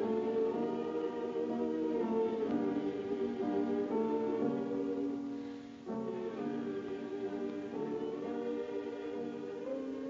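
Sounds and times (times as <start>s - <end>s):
choir holding sustained chords: 0.0s - 10.0s.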